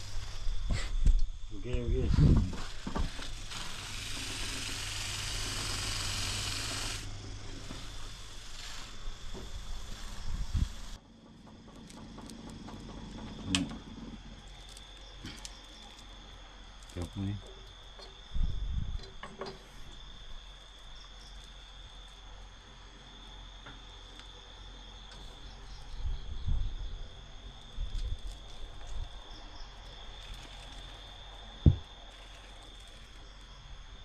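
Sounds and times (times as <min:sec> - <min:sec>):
high insect chirring: 0:00.0 - 0:34.0
electric grinding wheel grinding: 0:02.4 - 0:11.0.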